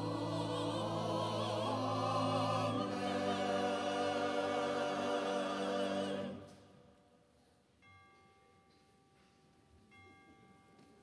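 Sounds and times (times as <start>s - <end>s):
pipe organ: 0.0s - 6.5s
choir singing: 0.0s - 6.8s.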